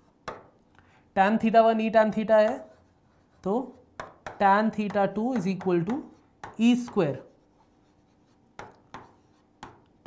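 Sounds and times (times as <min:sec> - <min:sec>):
faint steady hum: 0:00.0 - 0:10.0
pen tip tapping on board: 0:08.6 - 0:09.9.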